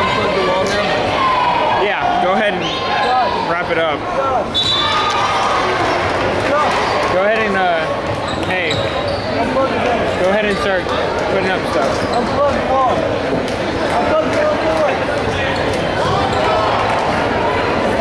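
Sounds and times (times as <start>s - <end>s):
spectators and players shouting: 0.0s - 18.0s.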